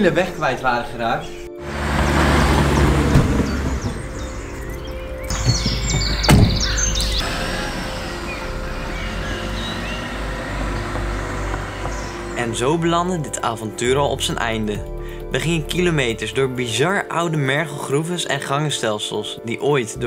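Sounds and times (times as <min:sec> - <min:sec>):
birds chirping: 0:00.0 - 0:16.5
background music: 0:00.0 - 0:20.0
cars driving past: 0:01.6 - 0:13.2
thump: 0:03.1 - 0:04.0, 0:05.5 - 0:06.7.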